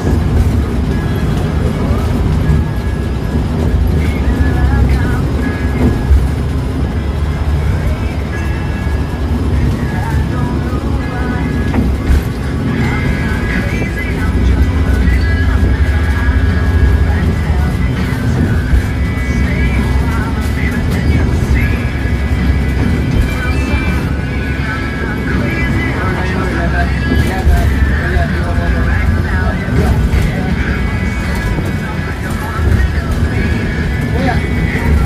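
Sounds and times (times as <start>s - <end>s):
bus engine and road rumble: 0.0s - 35.0s
music with singing voice: 0.0s - 35.0s.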